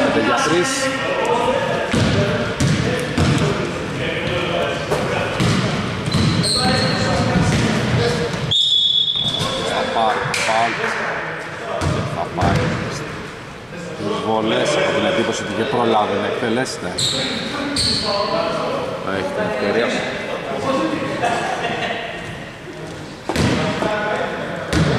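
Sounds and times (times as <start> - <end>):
players' voices echoing: 0.0 - 24.9
sneakers squeaking: 1.4 - 9.8, 16.9 - 18.4
referee whistle blast: 8.5 - 9.6.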